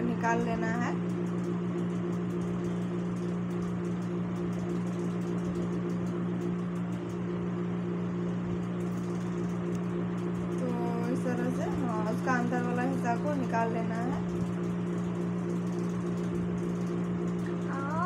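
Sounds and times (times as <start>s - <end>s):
woman speaking: 0.0s - 1.0s, 10.6s - 14.3s
electric motor hum: 0.0s - 18.0s.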